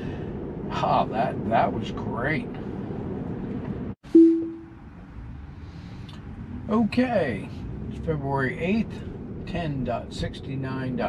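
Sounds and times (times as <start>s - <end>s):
low electronic chime: 4.1s - 4.7s
car cabin road noise: 4.8s - 11.0s.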